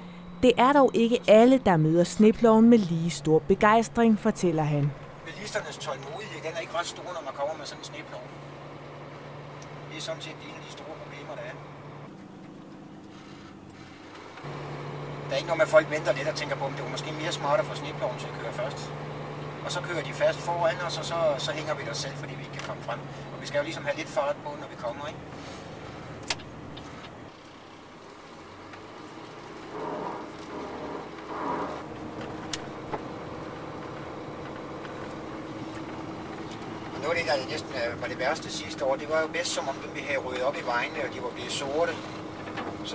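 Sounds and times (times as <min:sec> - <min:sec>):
diesel truck engine running: 0:00.0 - 0:42.9
faint road noise: 0:00.0 - 0:42.9.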